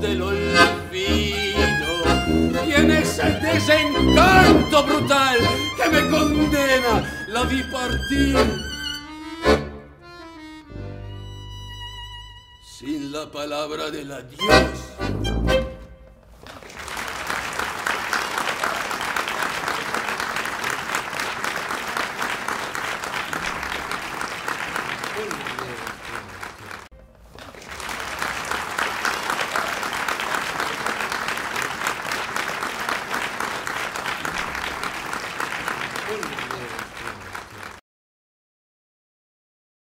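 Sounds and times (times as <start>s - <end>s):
audience applauding: 1.8s - 9.0s, 15.6s - 37.8s.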